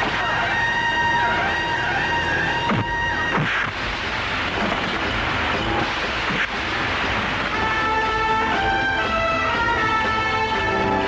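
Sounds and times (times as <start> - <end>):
background music: 0.0 - 11.0
loud steady rushing noise: 0.0 - 11.0.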